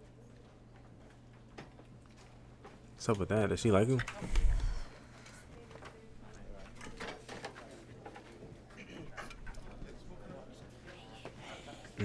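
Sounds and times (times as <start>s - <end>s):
steady low hum: 4.0s - 6.3s.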